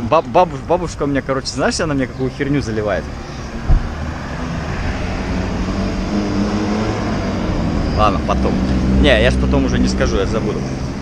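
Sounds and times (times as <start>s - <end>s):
vehicle engine humming: 0.0s - 11.0s
low thump: 3.6s - 4.0s.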